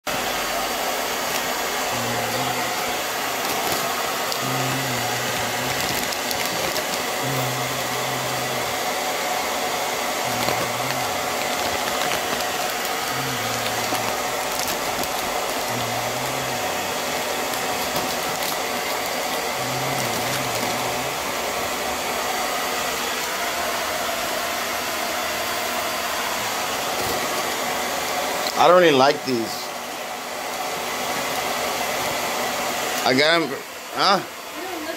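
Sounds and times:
fan rushing air: 0:00.2 - 0:33.1.

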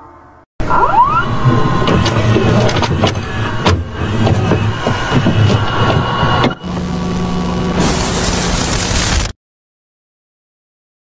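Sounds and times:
sharp clicks and crackles: 0:07.9 - 0:09.4.

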